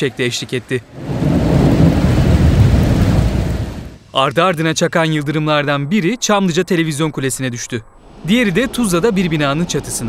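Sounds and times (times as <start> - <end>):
steady rain: 0.3 - 4.0
thunder rumbling: 0.9 - 4.0.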